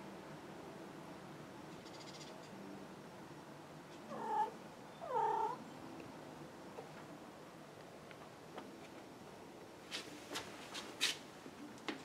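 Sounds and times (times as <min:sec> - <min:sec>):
cat meowing: 0:04.1 - 0:05.6.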